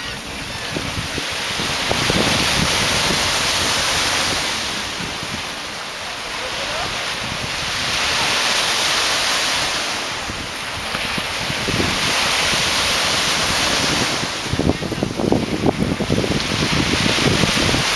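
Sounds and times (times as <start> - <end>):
surf washing in: 0.0 - 17.9
wind buffeting microphone: 0.0 - 17.9.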